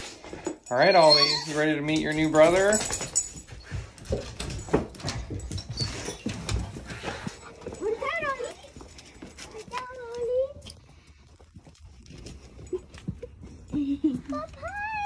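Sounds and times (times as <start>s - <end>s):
footsteps and claws: 0.0s - 15.0s
dog whining: 0.7s - 1.8s, 14.4s - 15.0s.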